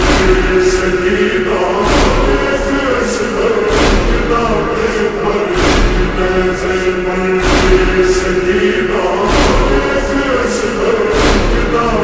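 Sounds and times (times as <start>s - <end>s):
low thumps: 0.0s - 12.0s
men chanting with reverb: 0.0s - 12.0s.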